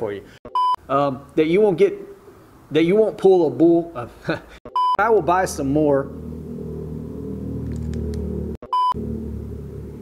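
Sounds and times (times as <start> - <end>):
electronic bleep: 4.7 - 5.0, 8.6 - 9.0
loud car passing: 5.9 - 10.0.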